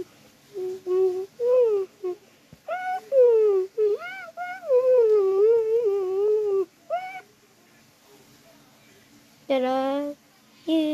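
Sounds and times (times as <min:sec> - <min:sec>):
child humming a tune: 0:00.0 - 0:07.2.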